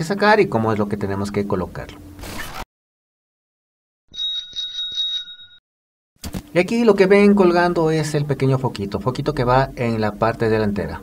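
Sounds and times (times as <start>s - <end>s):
bicycle bell ringing: 4.1s - 5.6s.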